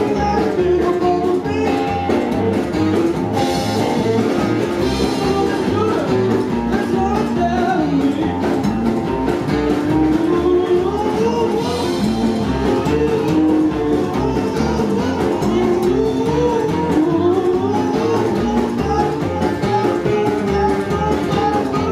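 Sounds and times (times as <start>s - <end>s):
drum kit beat: 0.0s - 21.9s
electric guitar: 0.0s - 21.9s
slapped upright bass: 0.0s - 21.9s.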